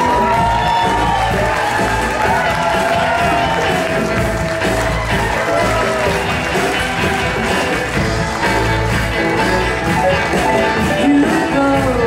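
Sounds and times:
acoustic and electric guitars strummed: 0:00.0 - 0:12.0
bass: 0:00.0 - 0:12.0
drums: 0:00.0 - 0:12.0.

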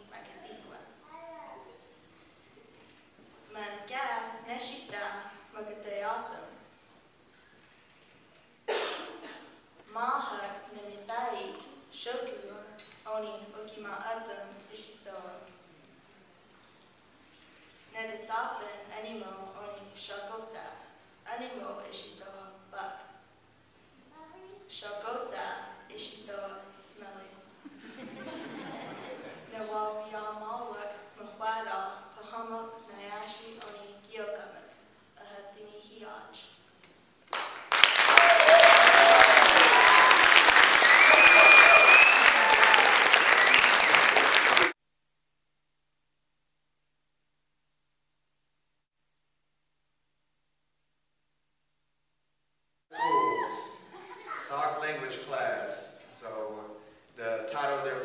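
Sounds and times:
faint hiss: 0:00.0 - 0:38.2, 0:52.9 - 0:58.0
audience applauding: 0:37.3 - 0:44.8.

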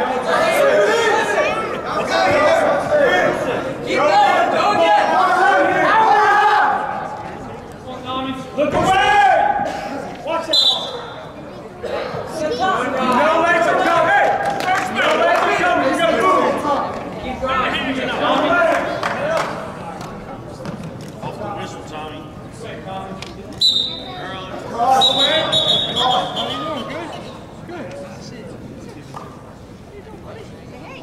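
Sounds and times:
people shouting: 0:04.0 - 0:06.9
shrill whistle blast: 0:10.5 - 0:11.1, 0:23.6 - 0:24.2, 0:24.9 - 0:26.8.

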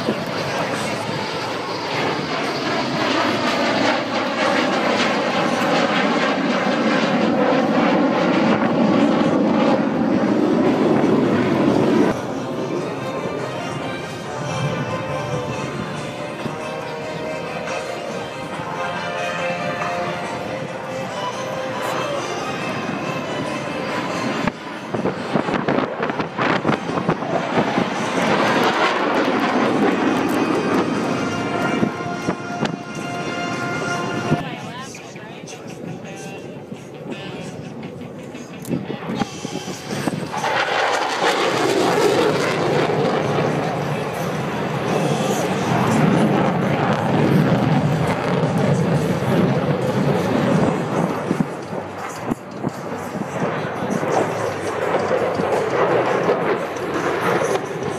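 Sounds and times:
fighter jet flying past: 0:00.0 - 0:57.9
music: 0:10.6 - 0:57.9.

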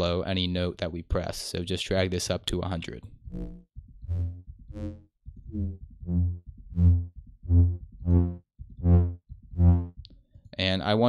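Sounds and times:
synthesized brass notes: 0:03.3 - 0:10.0.

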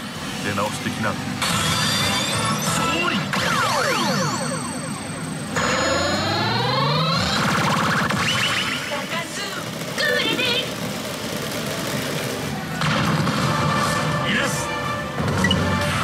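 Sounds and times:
constant dense din: 0:00.3 - 0:16.0
warbling electronic effect: 0:01.4 - 0:09.4
upward sweeping electronic tones: 0:01.5 - 0:09.0.

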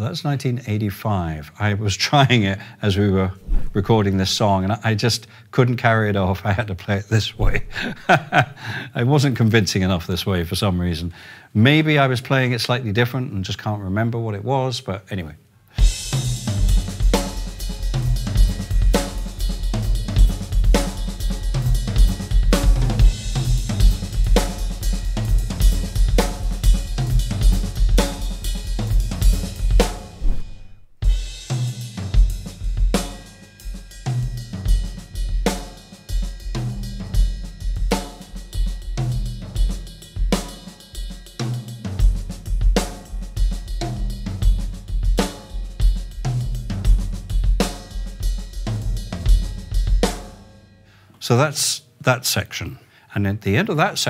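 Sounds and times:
snare drum: 0:03.4 - 0:04.0, 0:15.8 - 0:33.3, 0:42.7 - 0:50.3
bass drum pulse: 0:03.4 - 0:04.2, 0:07.4 - 0:08.6, 0:30.1 - 0:31.2
tom pattern: 0:07.1 - 0:08.9.

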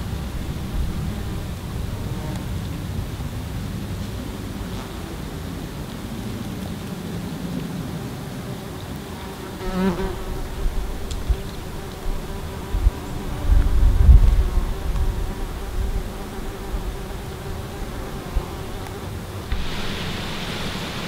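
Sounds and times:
flying insect buzzing: 0:09.0 - 0:21.0
low rumble on microphone: 0:10.0 - 0:18.8.

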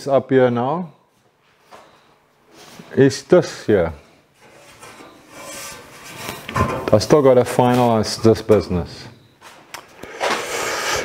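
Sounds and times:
hand scraping sheet metal: 0:04.4 - 0:08.3.

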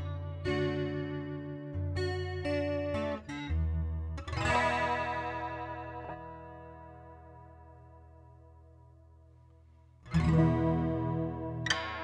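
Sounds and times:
acoustic guitar with chorus effect: 0:00.0 - 0:12.0.

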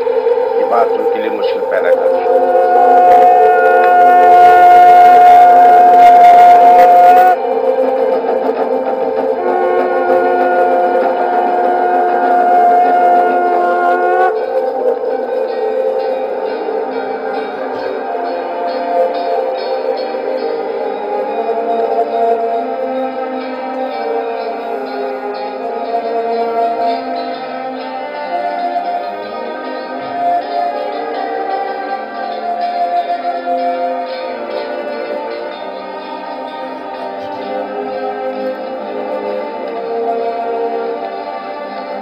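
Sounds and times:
sustained orchestral held notes: 0:00.0 - 0:42.0.

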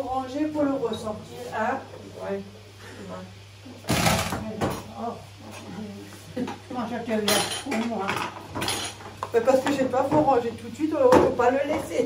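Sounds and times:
women talking: 0:00.0 - 0:03.3, 0:04.4 - 0:08.3, 0:09.3 - 0:12.0
loud knock of kitchen things: 0:03.9 - 0:04.9.

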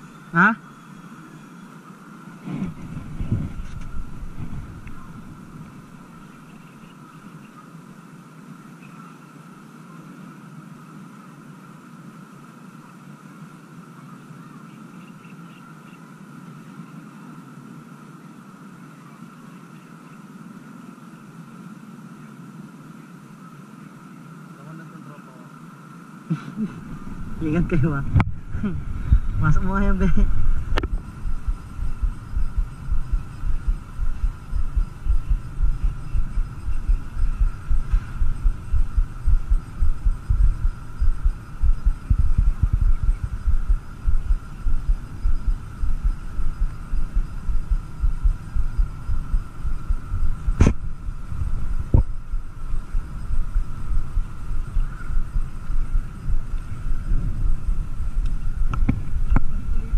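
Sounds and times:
faint high hum: 0:00.0 - 0:59.9
wind buffeting microphone: 0:02.4 - 0:06.7, 0:26.8 - 0:59.9.

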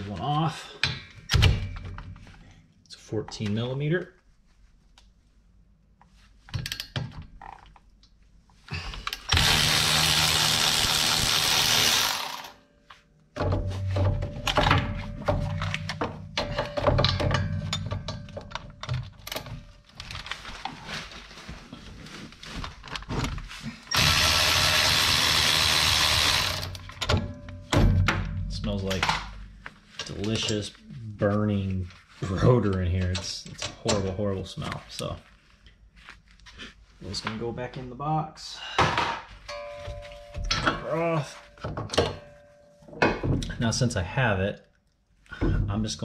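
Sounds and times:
clicks and knocks of tools: 0:06.5 - 0:08.2, 0:14.4 - 0:20.3
electric ratchet running: 0:09.3 - 0:12.6, 0:23.9 - 0:26.8.

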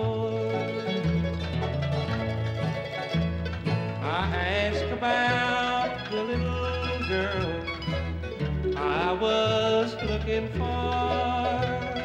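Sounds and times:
banjo picking: 0:00.0 - 0:12.0
bass line: 0:00.0 - 0:12.0
guitar picking: 0:00.0 - 0:12.0
mandolin picking: 0:00.0 - 0:12.0.

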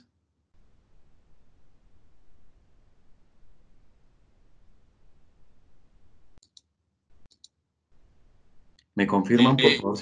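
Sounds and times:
computer mouse clicks: 0:06.4 - 0:07.6
faint microphone hiss: 0:08.0 - 0:10.0.

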